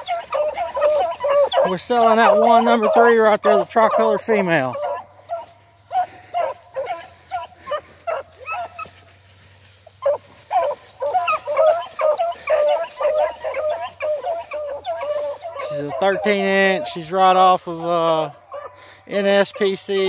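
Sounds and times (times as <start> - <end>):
dogs baying: 0.0 - 20.0.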